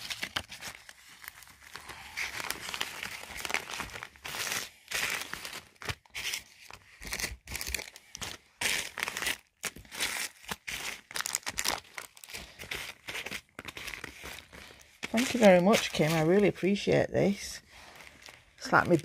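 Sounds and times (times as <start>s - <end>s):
plastic sleeves and bags rustling: 0.0s - 19.0s.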